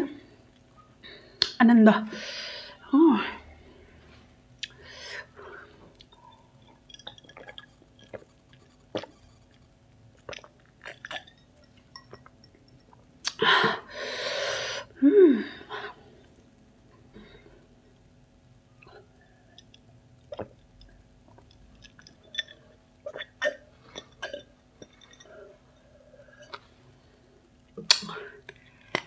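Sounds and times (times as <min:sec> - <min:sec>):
person gulping a drink: 0:05.9 - 0:09.2, 0:10.1 - 0:13.8, 0:18.8 - 0:25.6.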